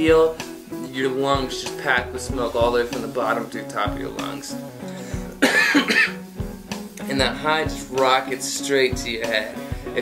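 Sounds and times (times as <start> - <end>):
guitar music: 0.0 - 10.0
man coughing: 5.4 - 6.2.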